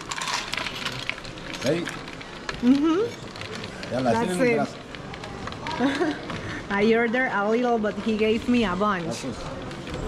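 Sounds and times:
snail shells clattering in a bowl: 0.0s - 2.6s.

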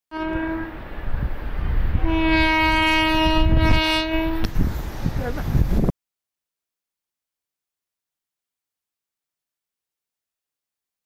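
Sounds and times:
locomotive horn blasts: 0.1s - 0.8s, 2.0s - 4.5s.

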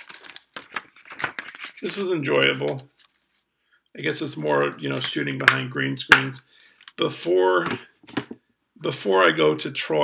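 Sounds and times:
man's voice: 4.0s - 7.9s, 8.8s - 10.0s.

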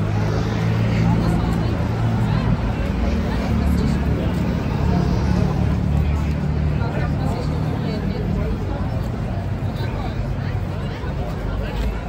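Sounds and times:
people talking: 0.0s - 12.0s
vehicle engine humming: 0.0s - 12.0s.

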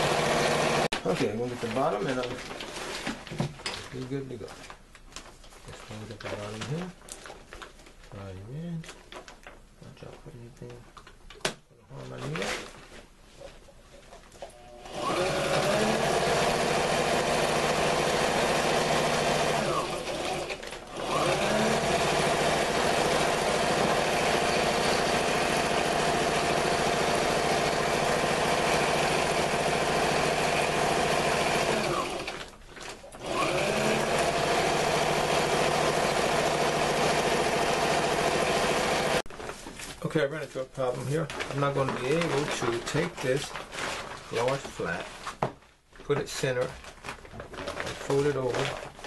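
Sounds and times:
electric sewing machine stitching: 0.0s - 0.9s, 14.8s - 32.5s, 33.2s - 39.2s.

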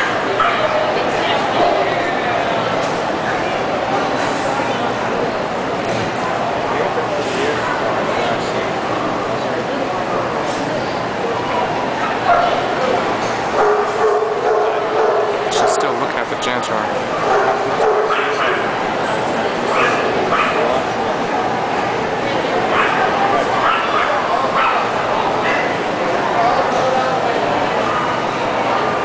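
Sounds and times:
dogs barking: 0.0s - 0.9s, 12.0s - 12.8s, 13.5s - 16.0s, 17.1s - 18.8s, 19.7s - 20.8s, 22.7s - 25.8s
crowd chatter: 0.0s - 29.0s.

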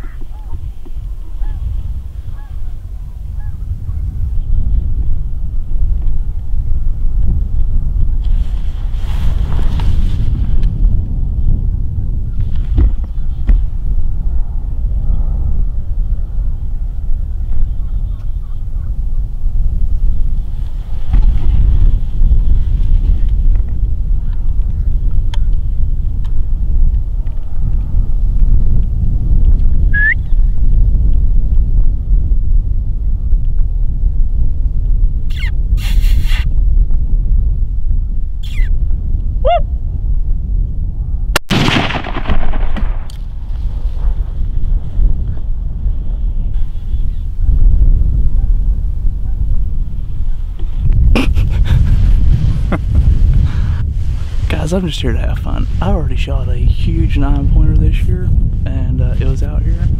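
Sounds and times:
wind rumble on microphone: 0.0s - 59.9s
rifle shot with echo: 41.5s - 43.3s.

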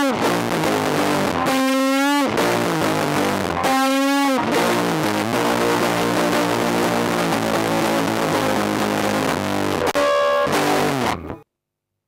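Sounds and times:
fuzzed electric guitar: 0.0s - 11.4s.

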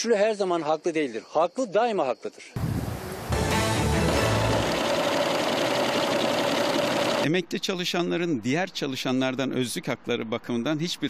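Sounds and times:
music sting with bass swell: 3.3s - 4.8s
banknote counting machine whirring: 4.0s - 7.3s.

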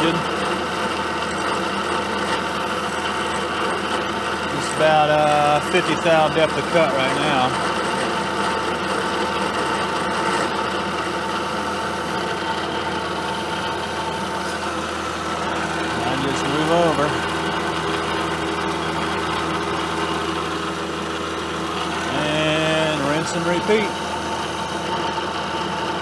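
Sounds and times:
milling machine cutting metal: 0.0s - 26.0s.

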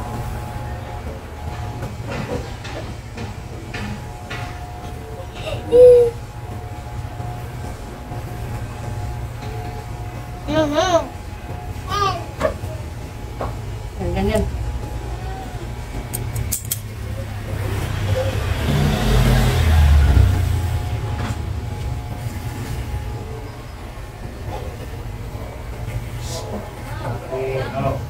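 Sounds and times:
broad rumbling noise: 0.0s - 27.2s.

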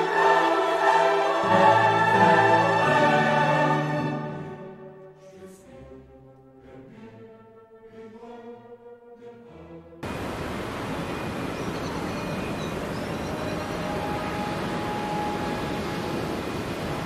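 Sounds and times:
soft orchestral music: 0.0s - 17.0s
outdoor ambient roar: 10.0s - 17.0s
faint high chirps: 11.1s - 16.2s.

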